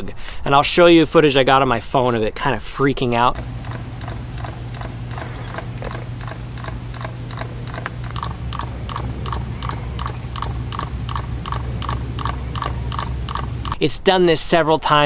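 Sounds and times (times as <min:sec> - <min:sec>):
low hum: 0:03.3 - 0:13.8
camera sensor ticking: 0:03.4 - 0:13.8.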